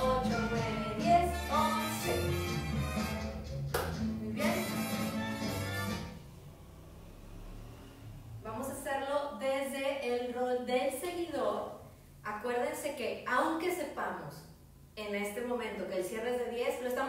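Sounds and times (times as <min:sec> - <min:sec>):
dance music with steady bass: 0:00.0 - 0:06.2.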